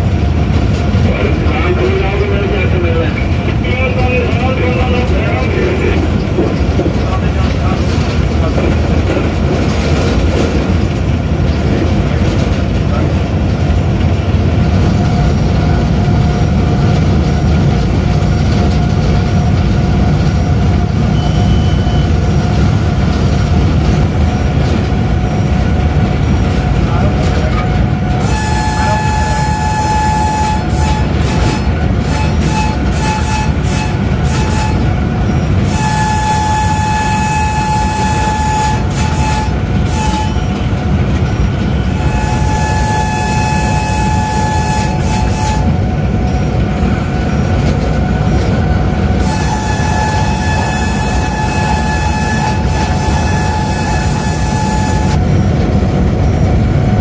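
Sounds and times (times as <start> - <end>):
locomotive engine and wheels rumble: 0.0 - 57.0
train horn blasts: 28.1 - 40.8, 41.7 - 45.9, 49.2 - 55.2.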